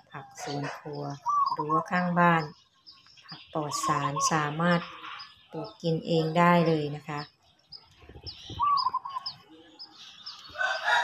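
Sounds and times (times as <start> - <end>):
small birds chirping: 0.0 - 11.0
rooster crowing: 10.5 - 11.0.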